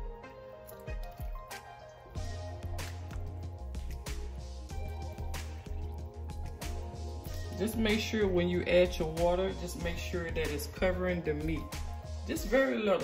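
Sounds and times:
background music with bass line: 0.0 - 13.0
water splashing and dripping: 0.7 - 8.0.

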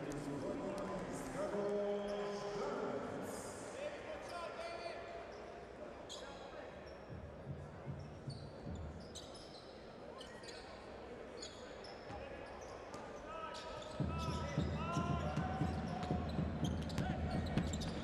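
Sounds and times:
crowd murmur and voices: 0.0 - 18.0
sneakers squeaking on hardwood: 6.9 - 10.7, 13.6 - 18.0.

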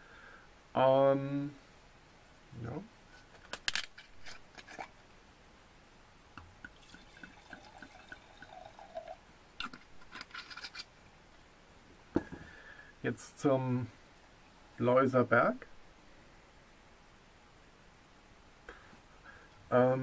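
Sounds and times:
wine glugging into glass: 6.7 - 9.2.

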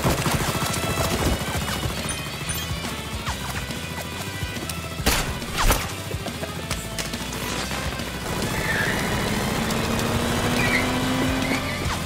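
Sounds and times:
background music: 0.0 - 12.0
car engine running: 0.0 - 12.0
tyre squeals: 8.4 - 9.2, 10.4 - 12.0.

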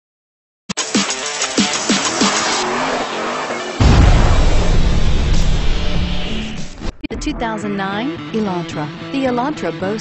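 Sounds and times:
electronic music: 0.7 - 2.7
car sound effect: 0.7 - 7.3
loud low boom: 3.8 - 7.0.

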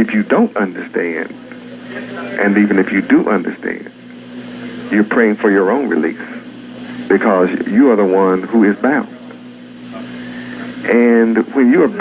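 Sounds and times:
man speaking: 0.0 - 1.4, 2.0 - 4.0, 4.9 - 6.5, 7.1 - 9.3, 9.9 - 12.0
faint hiss: 0.0 - 12.0.

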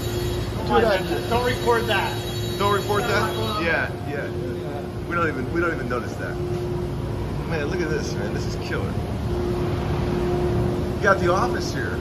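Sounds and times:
large electric fans running: 0.0 - 12.0.

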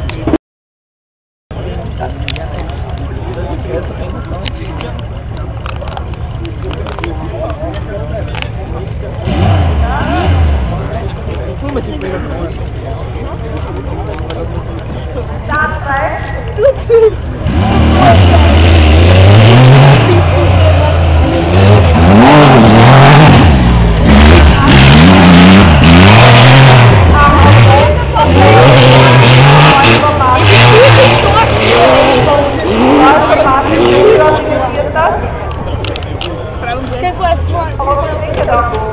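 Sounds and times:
buggy engine racing: 1.5 - 38.9.

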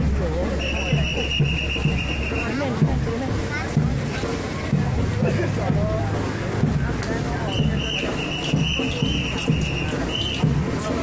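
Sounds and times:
crowd voices: 0.0 - 11.0.

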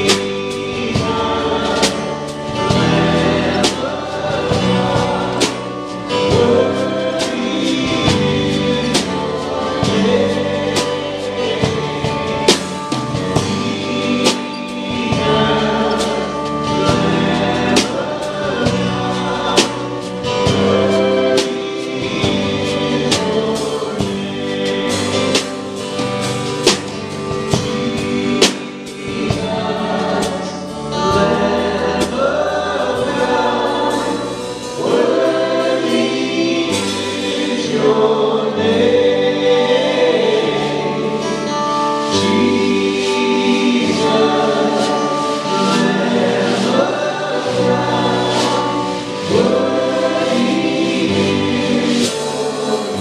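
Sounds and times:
drum strikes: 0.0 - 41.3
live band playing: 0.0 - 53.0
voices singing: 0.0 - 53.0.

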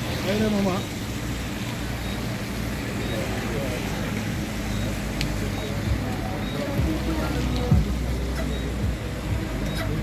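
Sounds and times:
vehicle engine idling: 0.0 - 10.0
indistinct voices talking: 1.9 - 10.0.

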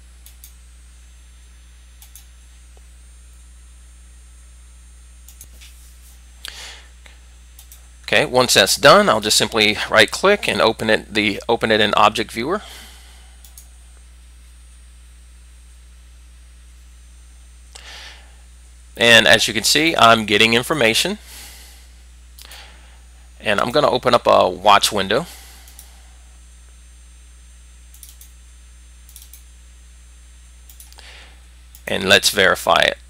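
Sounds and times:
low electrical hum: 0.0 - 33.0
computer mouse click: 2.0 - 2.3, 7.6 - 7.8, 13.4 - 13.7, 27.9 - 28.3, 29.1 - 29.4.

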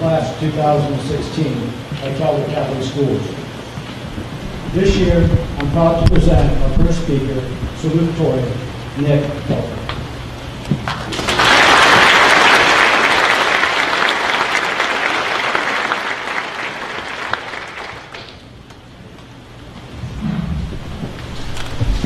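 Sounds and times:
audience applauding: 10.8 - 18.4.

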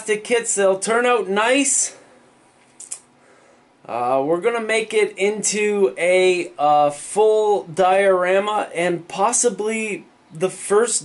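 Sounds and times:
man talking: 0.0 - 2.0, 3.9 - 11.0.

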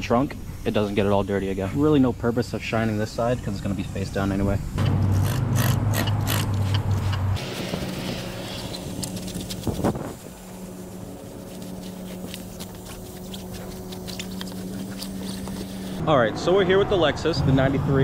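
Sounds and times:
steady hum: 0.0 - 16.5
cloth rubbing on tyre: 5.1 - 16.0.

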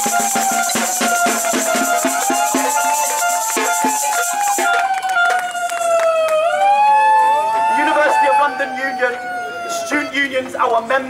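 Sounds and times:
hand rattles clattering: 0.0 - 4.8
siren-like wail: 0.0 - 10.5.

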